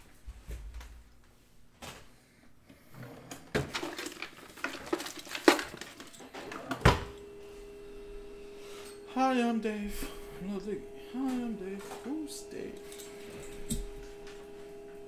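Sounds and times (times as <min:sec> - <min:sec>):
items handled on a desk: 0:03.4 - 0:07.1
steady low tone: 0:06.3 - 0:15.0.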